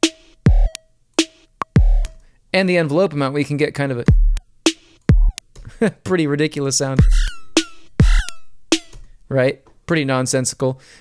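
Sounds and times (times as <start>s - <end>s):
kick drum: 0.5s - 0.8s, 1.6s - 2.1s, 4.1s - 4.4s, 5.1s - 5.4s, 7.0s - 7.3s, 8.0s - 9.0s.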